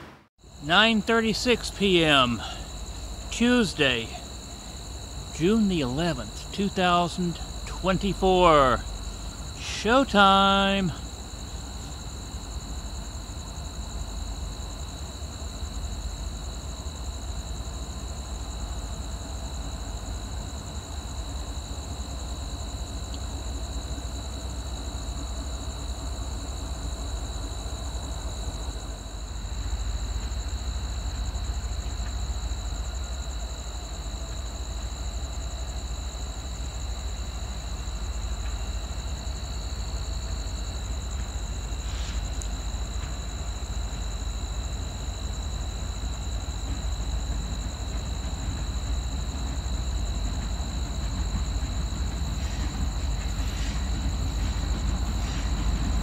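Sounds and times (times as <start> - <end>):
night insects chirping: 0.0 - 56.0
diesel locomotive rumble: 0.5 - 16.4, 17.5 - 56.0.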